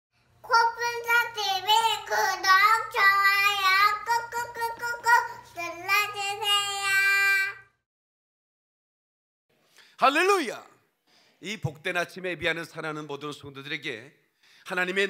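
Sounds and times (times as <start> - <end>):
little girl singing jingle: 0.4 - 7.7.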